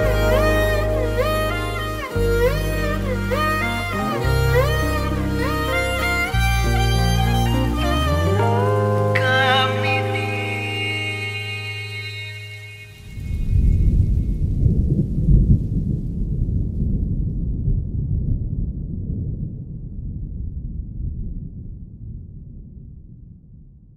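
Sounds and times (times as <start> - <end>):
long low rumble: 0.0 - 11.9, 13.0 - 23.9
held song notes: 0.0 - 13.1.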